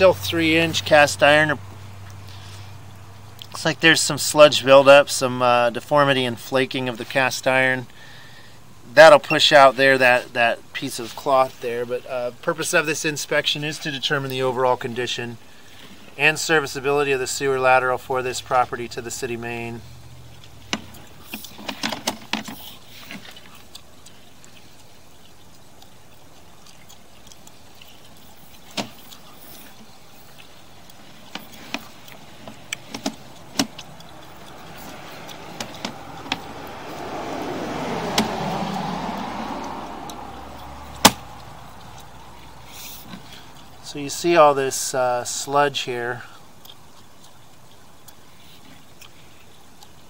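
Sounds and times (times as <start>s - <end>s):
car passing: 15.4s - 21.9s, 27.0s - 44.7s
cable clicks and knocks: 31.3s - 33.9s.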